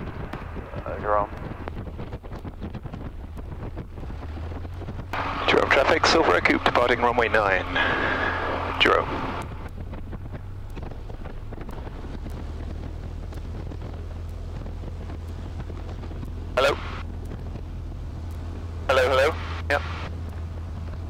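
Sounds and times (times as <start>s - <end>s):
aircraft engine and propeller droning: 0.0s - 21.0s
wind on microphone: 0.0s - 21.0s
person speaking: 18.9s - 19.9s.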